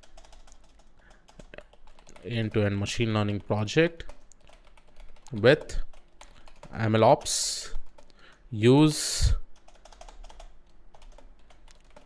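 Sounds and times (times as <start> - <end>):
computer keyboard typing: 0.0 - 8.3, 9.6 - 12.0.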